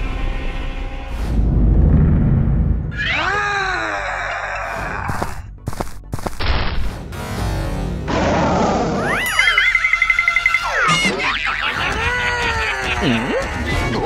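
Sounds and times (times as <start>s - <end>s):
music: 0.0s - 3.0s, 3.7s - 14.0s.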